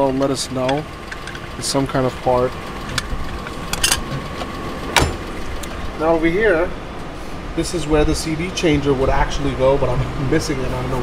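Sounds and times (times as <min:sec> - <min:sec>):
steady low hum: 0:00.0 - 0:11.0
metal part clicking and knocking: 0:02.9 - 0:04.2.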